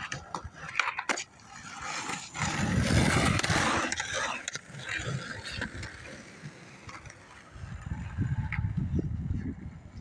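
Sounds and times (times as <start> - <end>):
skateboard wheels rolling on concrete: 0.0 - 10.0.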